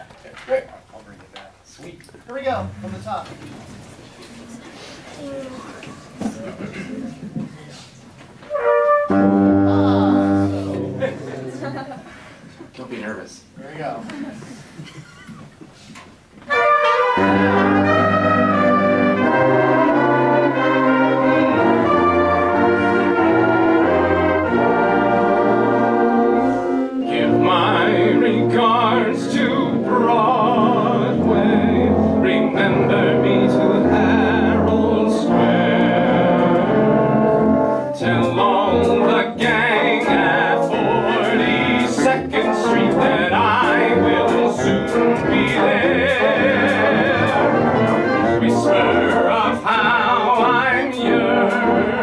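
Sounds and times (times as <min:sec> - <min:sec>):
brass and woodwind band chord: 0:08.5 - 0:11.4, 0:16.5 - 0:52.0.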